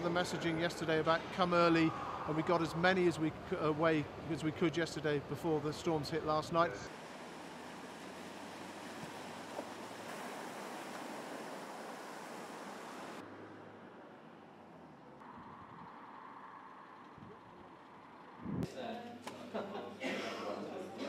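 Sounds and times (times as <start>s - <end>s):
distant traffic: 0.0s - 18.6s
wind: 0.0s - 20.8s.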